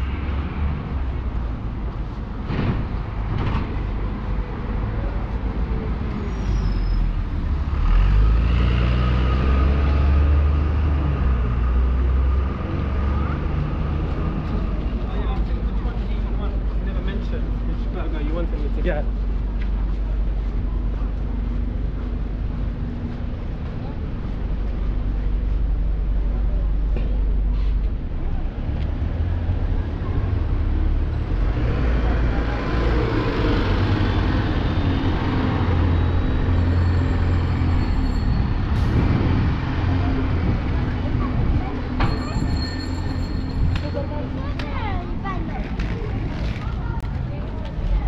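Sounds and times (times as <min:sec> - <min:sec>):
bus engine rumbling: 0:00.0 - 0:48.0.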